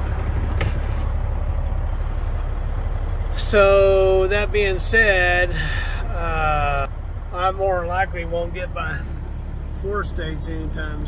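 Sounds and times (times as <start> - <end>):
road noise in cab: 0.0 - 11.0
truck engine rumble: 0.0 - 11.0.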